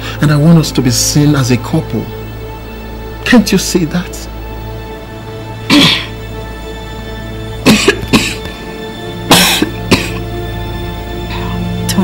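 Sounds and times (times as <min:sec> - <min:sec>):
background music with held tones: 0:00.0 - 0:12.0
person coughing: 0:05.7 - 0:06.2, 0:07.6 - 0:08.5, 0:09.3 - 0:10.3.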